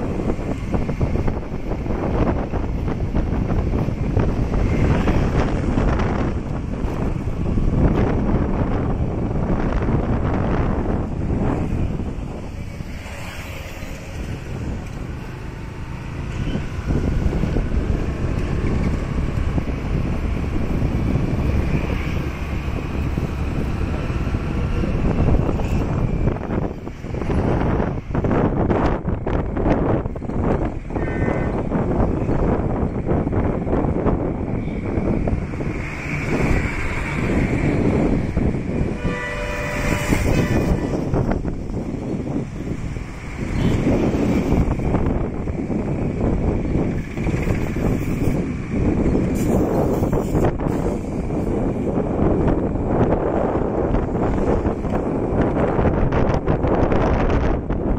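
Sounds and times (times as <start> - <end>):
vehicle road and wind noise: 0.0 - 57.9
vehicle horn honks: 39.0 - 40.9.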